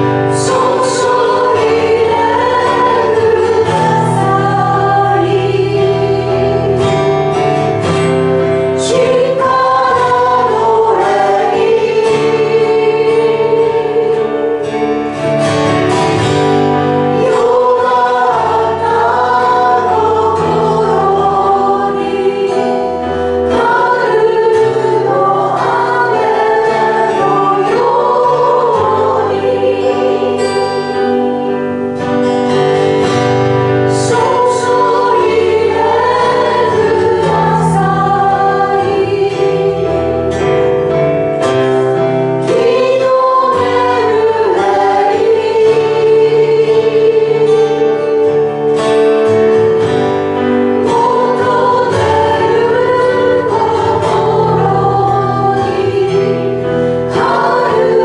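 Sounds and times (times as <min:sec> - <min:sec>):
acoustic guitar: 0:00.0 - 0:58.0
group singing worship song: 0:00.0 - 0:58.0.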